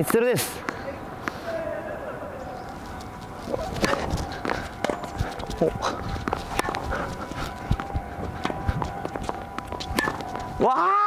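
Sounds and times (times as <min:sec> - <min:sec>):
quick footsteps on hard court: 0:02.8 - 0:10.6
tennis ball struck with rackets: 0:03.6 - 0:04.1.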